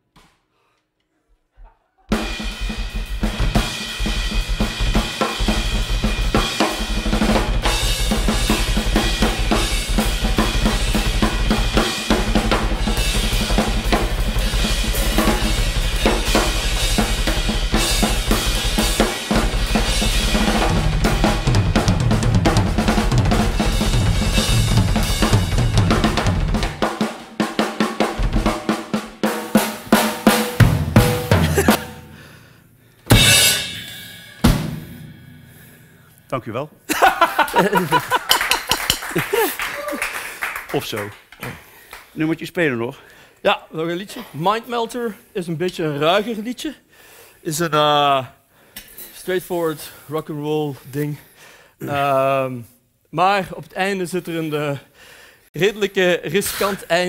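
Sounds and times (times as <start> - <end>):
hard accented drum hits: 2.1 - 32.4, 33.1 - 36.1
backing track: 2.1 - 39.0
rock drums playing: 2.1 - 39.5.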